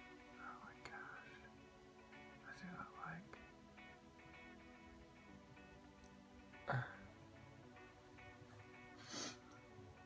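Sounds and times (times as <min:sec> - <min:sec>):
faint background music: 0:00.0 - 0:10.0
soft whisper: 0:00.4 - 0:01.5, 0:02.4 - 0:03.4.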